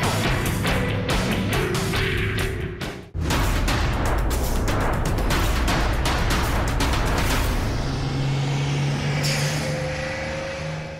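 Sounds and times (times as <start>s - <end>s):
bus engine humming: 6.4s - 10.9s.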